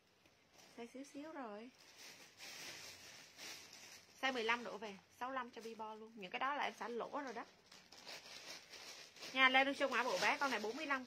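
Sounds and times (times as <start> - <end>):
plastic garment bags rustling: 0.0 - 11.0.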